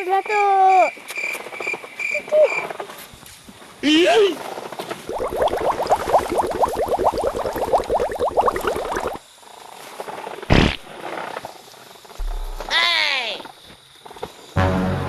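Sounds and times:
fast croaking rattle: 0:04.5 - 0:14.2.

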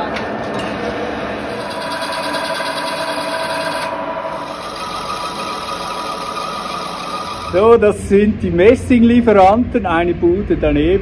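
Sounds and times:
metal lathe whining: 0:01.4 - 0:07.8.

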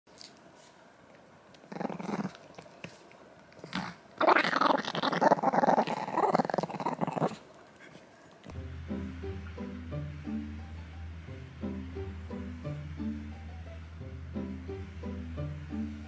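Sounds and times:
small dog growling: 0:01.7 - 0:02.7, 0:03.6 - 0:08.1.

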